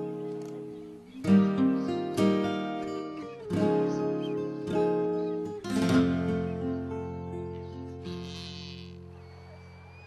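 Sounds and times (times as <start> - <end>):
acoustic guitar music: 0.0 - 9.2.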